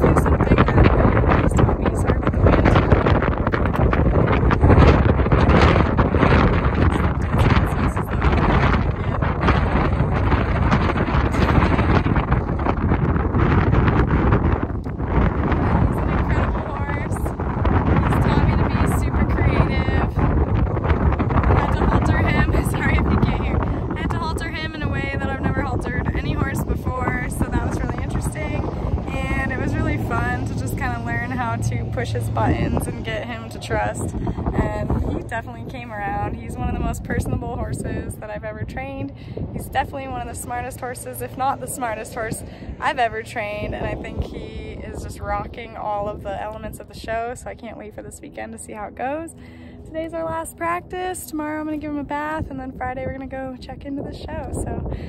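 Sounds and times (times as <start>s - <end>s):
woman talking: 0.0s - 12.4s, 15.4s - 20.3s, 21.5s - 55.0s
wind buffeting microphone: 0.0s - 55.0s.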